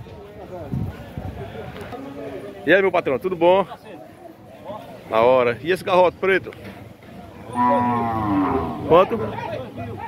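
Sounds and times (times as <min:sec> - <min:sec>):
cow mooing: 0:07.5 - 0:09.3.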